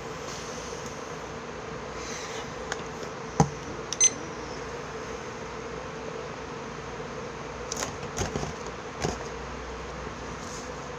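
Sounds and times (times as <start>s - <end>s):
appliance humming: 0.0s - 10.9s.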